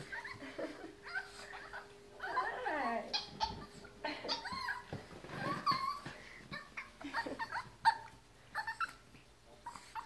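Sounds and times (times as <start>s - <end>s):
dog whining: 0.0s - 10.0s.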